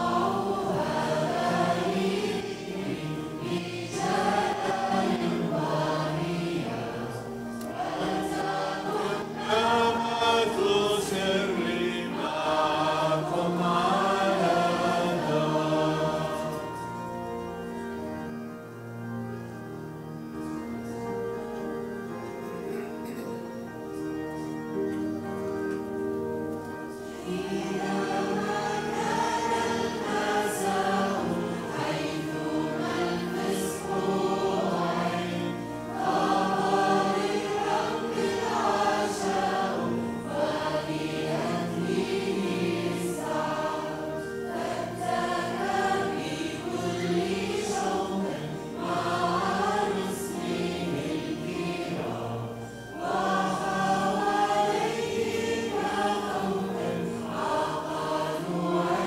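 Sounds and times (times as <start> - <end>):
choir singing a hymn: 0.0 - 59.0.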